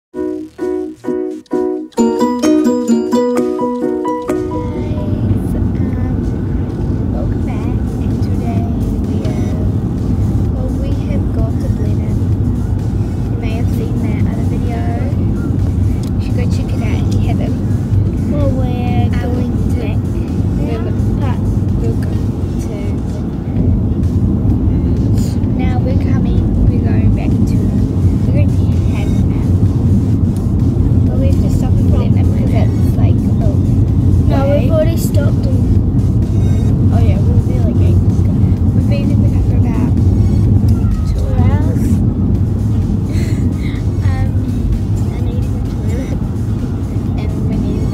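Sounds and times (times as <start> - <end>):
car road and engine rumble: 1.8 - 47.9.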